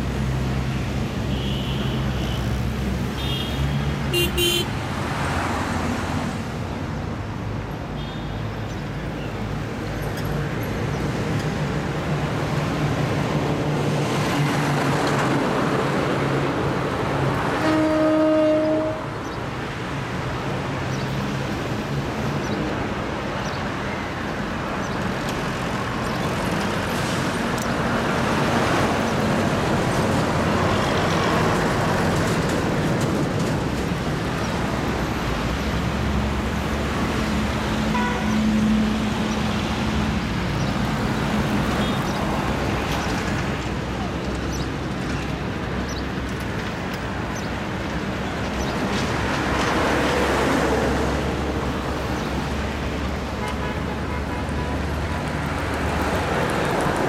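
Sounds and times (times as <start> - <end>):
lorries passing: 0.0 - 57.0
vehicle horn blast: 1.3 - 2.4, 3.2 - 4.8, 17.6 - 19.1, 37.9 - 38.4.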